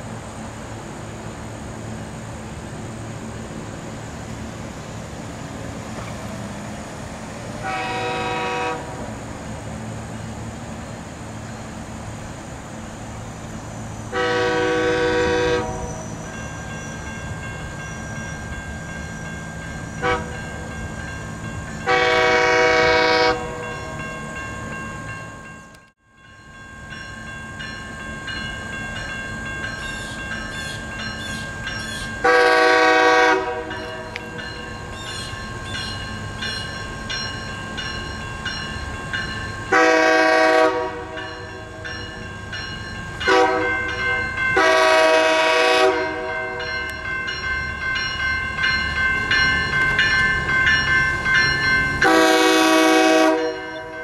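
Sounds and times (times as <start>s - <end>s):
train running noise: 0.0s - 54.0s
train horn blasts: 7.6s - 9.2s, 14.1s - 16.0s, 20.0s - 20.5s, 21.8s - 23.8s, 32.2s - 34.2s, 39.7s - 41.5s, 43.2s - 46.7s, 52.0s - 54.0s
level crossing bells ringing: 41.2s - 45.0s, 46.3s - 52.3s.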